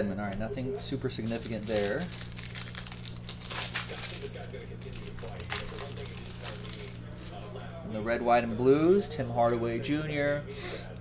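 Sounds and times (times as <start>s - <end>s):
steady low hum: 0.0s - 11.0s
cellophane wrapper crinkling: 1.2s - 7.6s.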